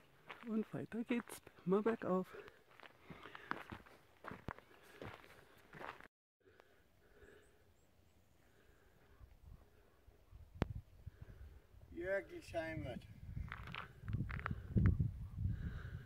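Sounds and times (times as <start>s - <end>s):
footsteps on gravel: 0.0s - 6.1s, 13.4s - 14.6s.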